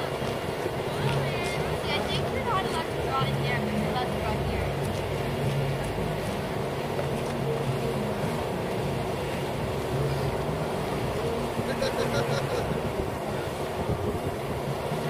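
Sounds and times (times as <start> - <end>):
faint voices: 0.0 - 15.0
low mechanical drone: 0.0 - 15.0.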